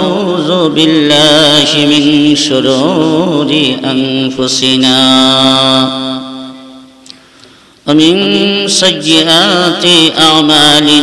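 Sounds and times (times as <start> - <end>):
man chanting into a microphone: 0.0 - 6.9, 7.8 - 11.0.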